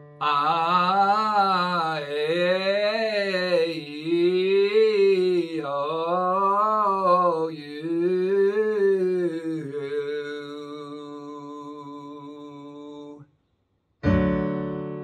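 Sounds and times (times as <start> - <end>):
man singing vowel exercise: 0.2 - 13.2.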